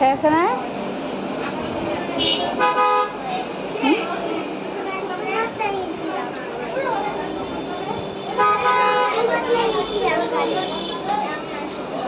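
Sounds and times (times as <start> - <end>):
voices talking: 0.0 - 12.0
child talking: 4.0 - 7.9, 8.9 - 12.0.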